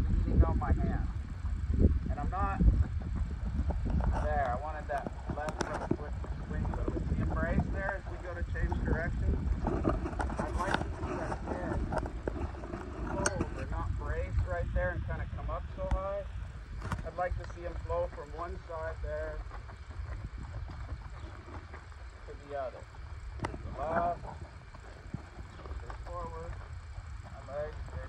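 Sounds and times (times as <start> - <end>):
wind rumble on microphone: 0.0 - 28.0
man talking: 4.2 - 9.4, 10.4 - 11.9, 13.1 - 16.3, 17.0 - 19.4, 22.2 - 22.9, 23.7 - 24.4, 25.5 - 26.6, 27.3 - 28.0.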